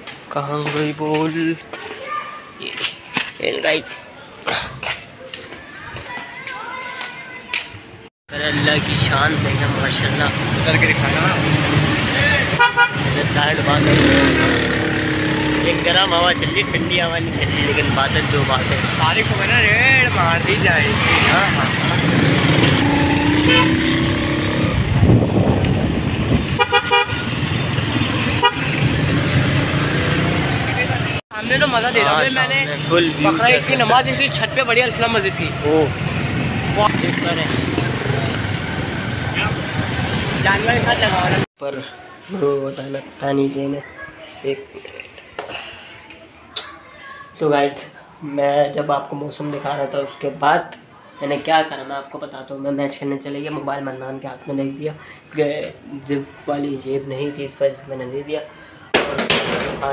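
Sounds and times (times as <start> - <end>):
vehicle engines running: 8.3 - 41.5
vehicle horns tooting: 12.4 - 14.0, 22.6 - 24.3, 26.4 - 29.4.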